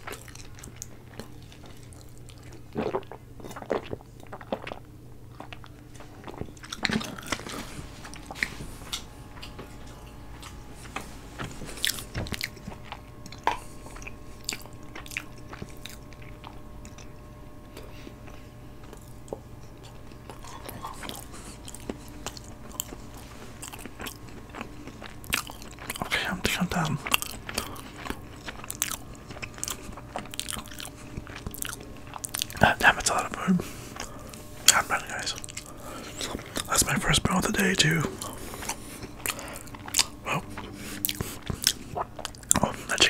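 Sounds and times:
chewing and mouth sounds: 0.0s - 43.0s.

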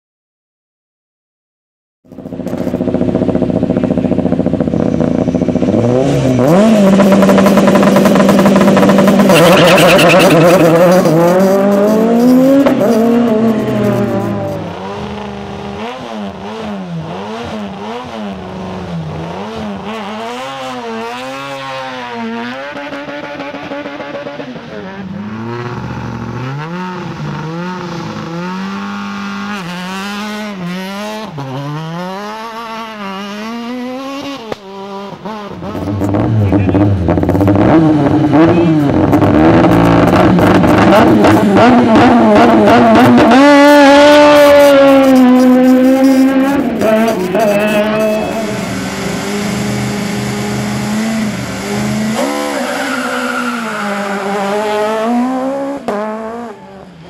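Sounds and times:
car accelerating and changing gear: 2.1s - 57.0s
rally car engines revving: 2.1s - 57.0s.

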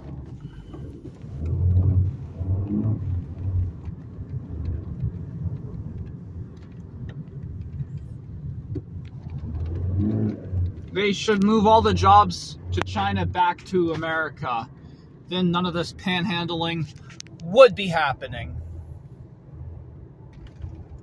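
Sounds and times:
car cabin road and engine rumble: 0.0s - 21.0s.

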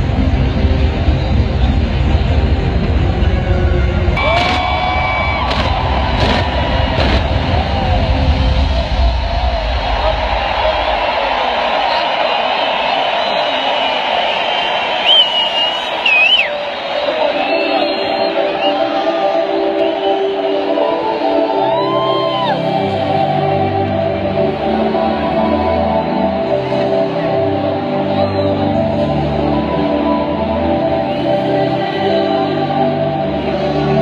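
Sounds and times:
heavy bass: 0.0s - 11.9s
loud music: 0.0s - 13.8s
stadium crowd cheering: 3.5s - 23.1s.

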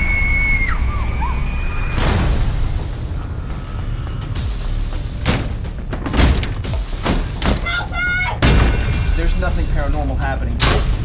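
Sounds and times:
woman screaming: 7.6s - 8.4s.

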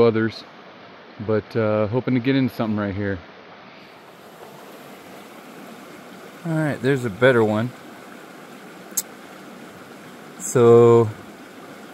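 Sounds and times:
stream water rushing: 0.0s - 11.9s.

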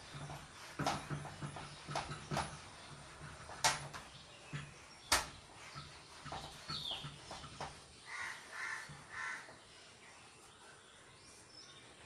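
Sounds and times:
duster scrubbing whiteboard: 0.0s - 10.8s
bird calling harshly: 8.1s - 9.5s.

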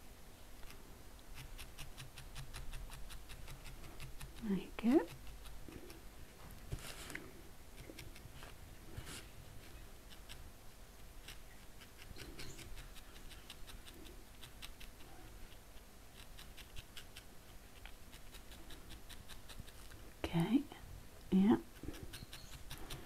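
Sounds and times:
felting needle poking wool: 0.6s - 9.3s, 10.1s - 20.0s.

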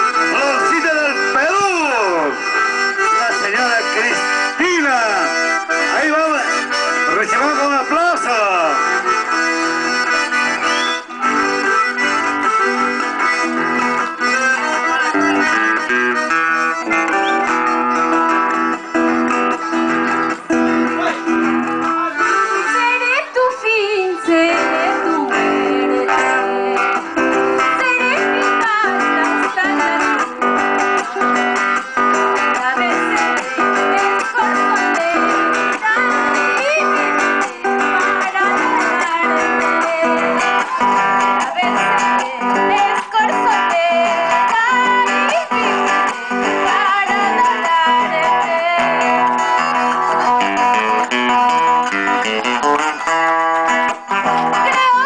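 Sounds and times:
piano accordion: 0.0s - 54.4s
strummed acoustic guitar: 0.0s - 55.0s
woman singing into a microphone: 22.6s - 30.3s, 32.4s - 49.6s, 54.5s - 55.0s.

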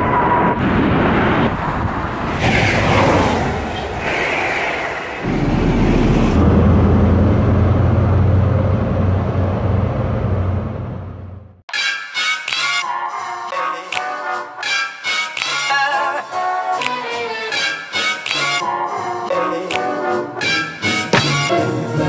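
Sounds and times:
jet airliner noise: 0.0s - 8.3s
train at station platform: 0.0s - 11.6s
diesel train engines droning: 3.3s - 11.6s.

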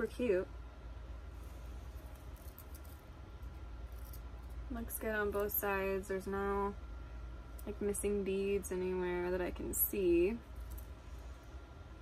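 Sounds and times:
low steady hum: 0.0s - 12.0s
beaded purse rustling and clicking: 1.9s - 4.6s, 10.4s - 11.0s.

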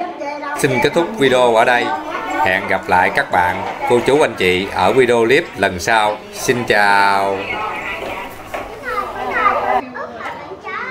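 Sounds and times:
children's voices playing: 0.6s - 10.9s
people talking: 0.6s - 10.9s.

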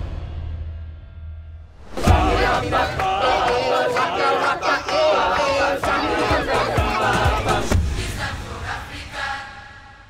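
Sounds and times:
crowd singing and calling out: 1.9s - 9.9s.

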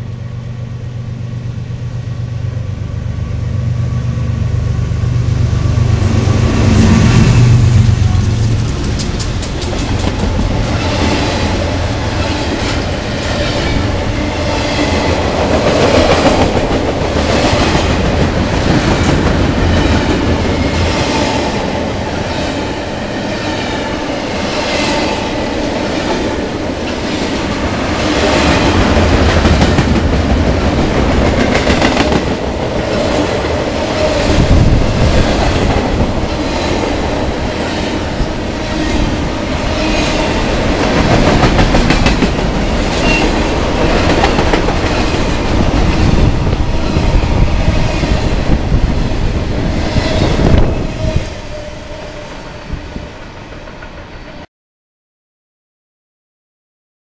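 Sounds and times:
freight train passing: 0.0s - 54.5s
wheels clacking over rail joints: 39.8s - 46.4s.

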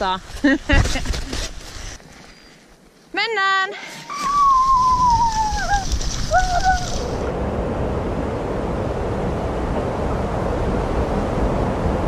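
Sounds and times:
woman speaking: 0.0s - 0.3s, 3.1s - 3.9s.

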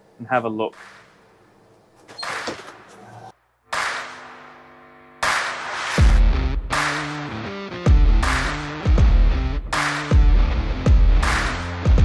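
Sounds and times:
metal door latch clunking: 2.0s - 2.9s
door swinging open: 2.0s - 3.3s
heavy bass beats: 7.9s - 12.0s.

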